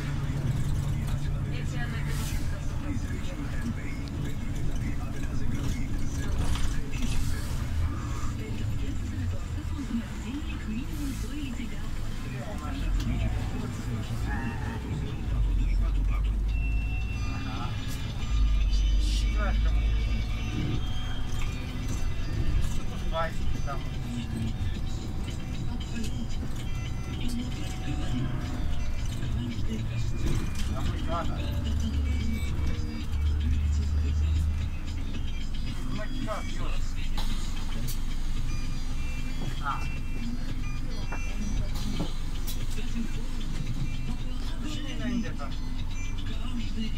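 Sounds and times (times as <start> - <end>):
man's voice: 0.0 - 10.1, 11.8 - 38.0, 42.6 - 46.9
music: 0.0 - 10.4, 11.5 - 46.9
bus engine and road rumble: 0.0 - 46.9.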